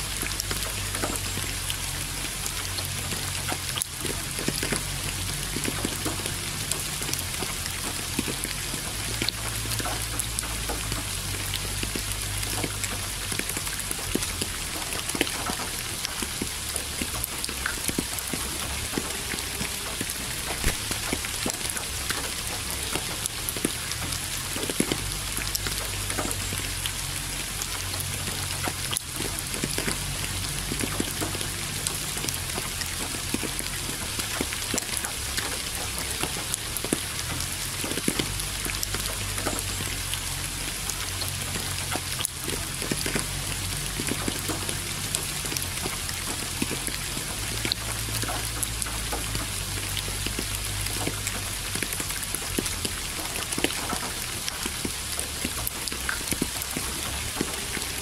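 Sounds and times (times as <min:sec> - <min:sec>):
rain drops ticking: 0:00.0 - 0:58.0.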